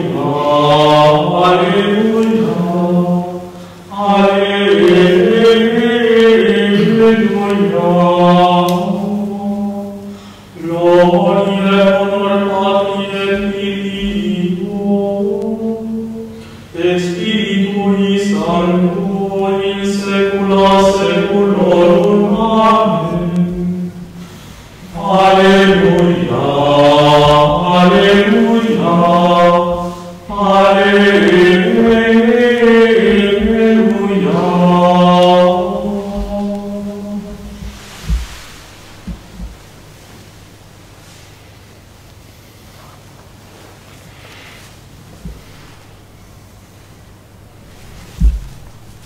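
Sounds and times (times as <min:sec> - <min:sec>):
man singing slow chant: 0:00.0 - 0:39.4.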